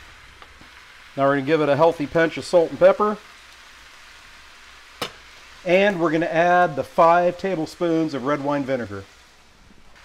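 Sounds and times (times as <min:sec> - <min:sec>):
meat sizzling in a skillet: 0:00.0 - 0:10.0.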